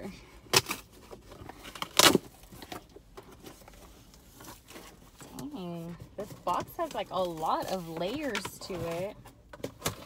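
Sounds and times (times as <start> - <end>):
cardboard box tearing: 0.5 - 2.8.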